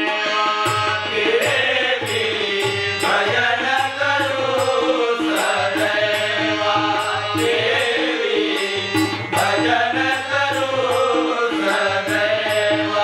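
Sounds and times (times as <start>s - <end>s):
harmonium: 0.0s - 13.0s
man singing: 0.0s - 13.0s
tabla: 0.0s - 13.0s.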